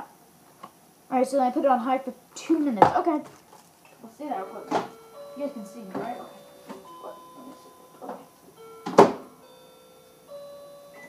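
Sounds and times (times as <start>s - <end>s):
microwave humming: 0.0s - 11.0s.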